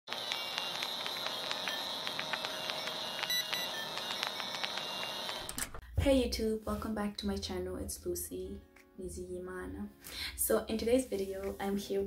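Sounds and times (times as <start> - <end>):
faint high whine: 0.1 - 5.6
sharp crackle clicks: 0.1 - 5.7.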